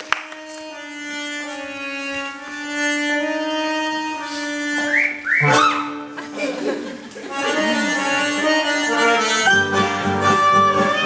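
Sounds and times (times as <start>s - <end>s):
rising whistle-like slides: 4.9s - 5.9s
music with held note: 7.3s - 11.0s.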